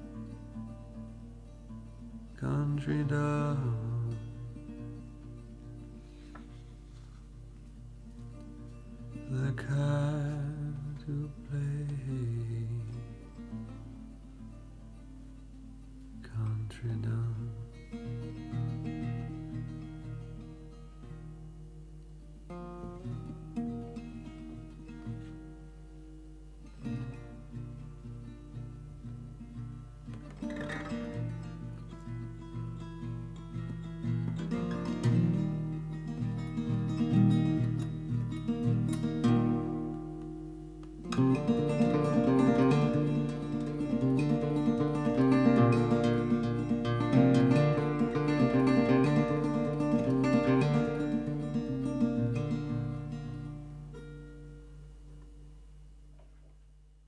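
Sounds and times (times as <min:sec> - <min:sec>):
acoustic guitar playing: 0:00.0 - 0:57.0.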